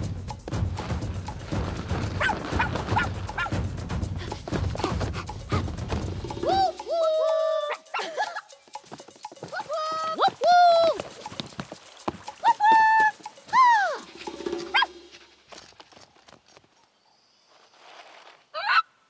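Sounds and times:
high-pitched cartoon voices: 6.4s - 8.6s.

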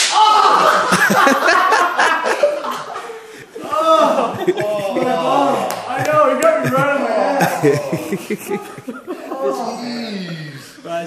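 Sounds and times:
whip cracking: 0.0s - 0.4s
men laughing: 0.5s - 10.0s
men yelling: 3.6s - 10.7s.

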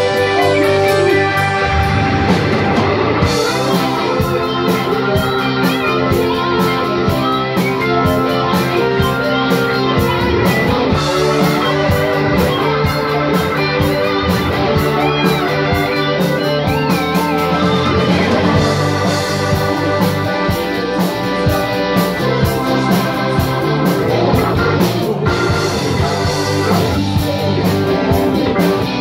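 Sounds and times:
drums: 0.0s - 29.0s
electric guitar: 0.0s - 29.0s
keyboards: 0.0s - 29.0s.

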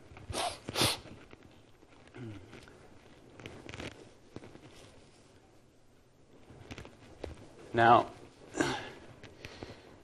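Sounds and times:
short hissing noises: 0.3s - 1.2s.

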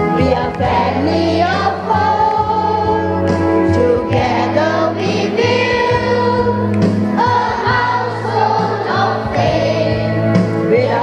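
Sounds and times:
children's choir singing gospel: 0.0s - 11.0s.

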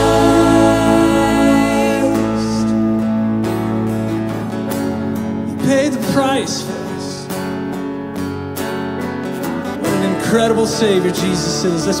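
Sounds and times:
person singing: 0.0s - 3.0s
held chords: 0.0s - 5.6s
guitar strumming: 0.0s - 12.0s.

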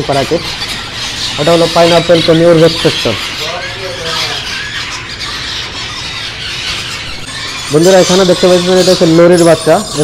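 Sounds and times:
parrots screeching and squawking: 0.0s - 10.0s.

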